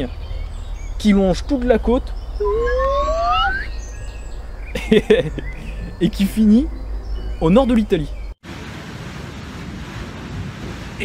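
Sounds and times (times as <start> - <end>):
sea noise: 2.4 - 7.1, 8.4 - 11.0.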